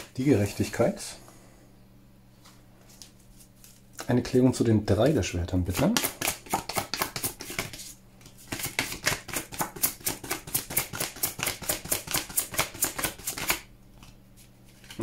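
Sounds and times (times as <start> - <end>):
cards being shuffled: 2.4 - 4.2, 5.7 - 15.0.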